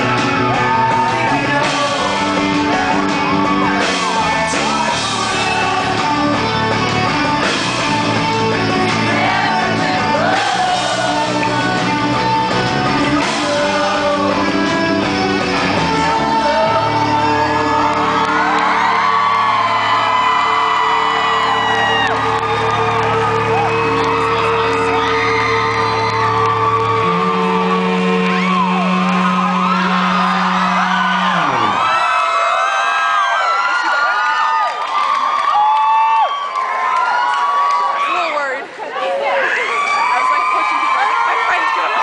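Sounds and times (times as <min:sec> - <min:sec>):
rock band holding chords: 0:00.0 - 0:32.6
crowd whooping and cheering: 0:00.0 - 0:42.0.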